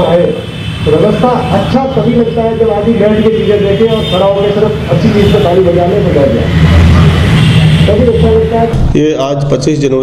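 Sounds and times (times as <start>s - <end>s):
man speaking: 0.0s - 6.5s, 7.9s - 10.0s
vehicle engine rumbling: 0.8s - 9.8s.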